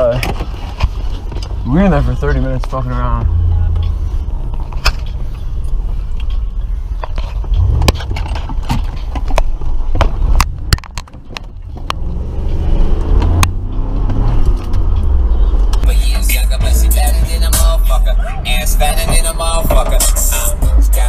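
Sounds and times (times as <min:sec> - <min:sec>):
car engine rumble: 0:00.0 - 0:21.0.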